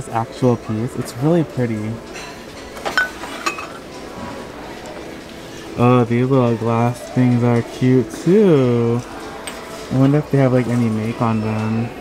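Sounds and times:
glass and ceramic clinking: 2.1 - 3.8.

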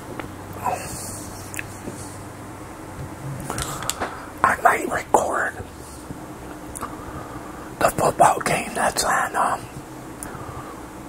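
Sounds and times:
man whispering: 0.6 - 2.2, 4.4 - 6.1, 7.8 - 9.8.

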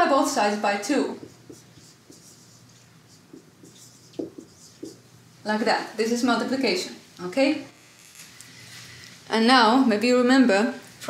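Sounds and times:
marker scratching on whiteboard: 0.9 - 5.0
marker squeaks: 1.2 - 5.0.

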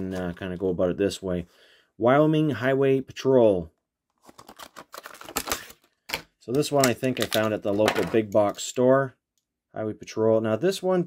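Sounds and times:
plastic blister pack crackling: 4.2 - 8.2.

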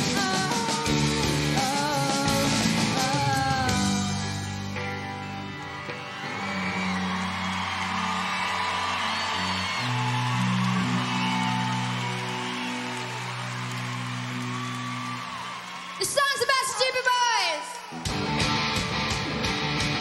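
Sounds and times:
rock band ringing chords: 0.0 - 14.7, 18.0 - 20.0
crowd noise: 0.0 - 20.0.

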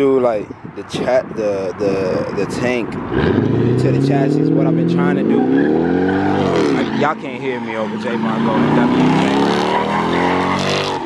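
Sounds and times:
car engine at high revs: 2.4 - 11.0.

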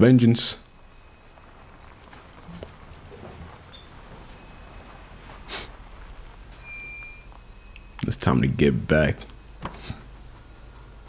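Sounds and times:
faint high-pitched beep: 0.8 - 1.9, 3.7 - 5.2, 6.6 - 8.4.

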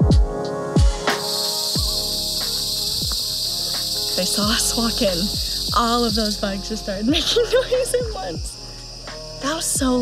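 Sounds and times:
background music with deep bass hits: 0.0 - 10.0
forest insects buzzing: 0.0 - 10.0.

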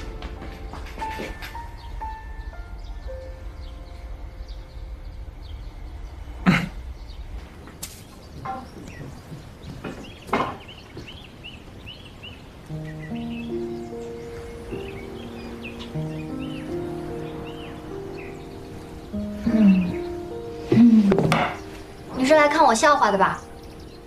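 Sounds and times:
soft background music: 0.0 - 10.2, 11.8 - 24.0
small birds chirping: 0.0 - 24.0.

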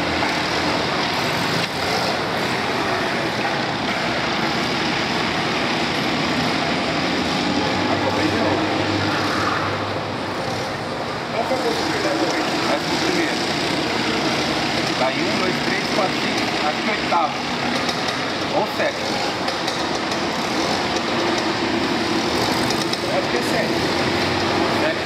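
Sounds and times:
racing kart engines buzzing: 0.0 - 25.0.

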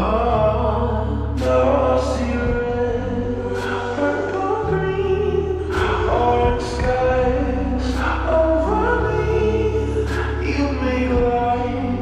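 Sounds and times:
chant-like vocal: 0.0 - 12.0
low bass note: 0.0 - 12.0.

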